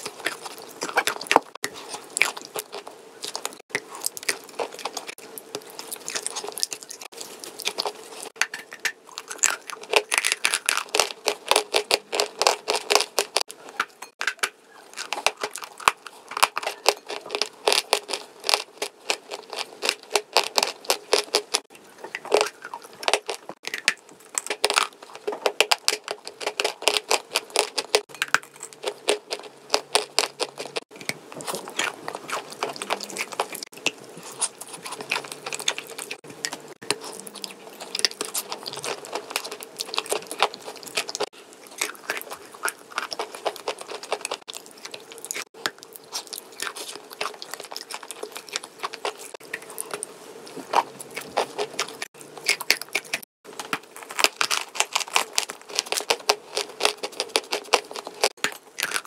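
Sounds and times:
crunching and chewing chalk: 0.0 - 59.0.

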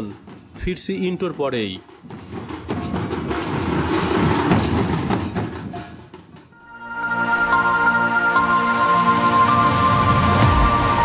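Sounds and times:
barrel drums and hand percussion: 0.0 - 6.6.

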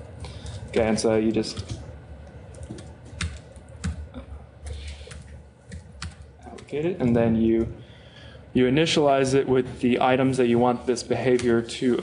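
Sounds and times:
laptop keyboard typing: 0.3 - 6.9.

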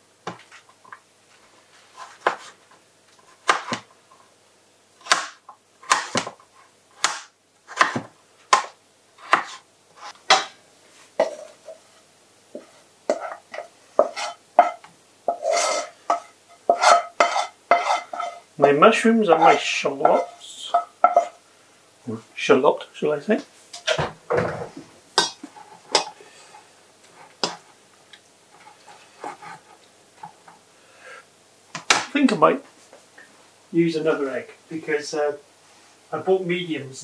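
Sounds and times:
knife chopping on a chopping board: 3.4 - 3.9, 5.0 - 6.4, 7.0 - 9.6.

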